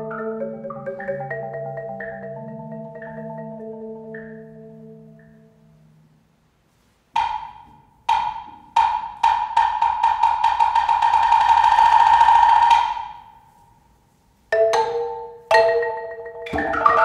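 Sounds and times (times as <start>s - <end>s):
wood block strokes and roll: 7.1s - 13.5s, 14.6s - 17.0s.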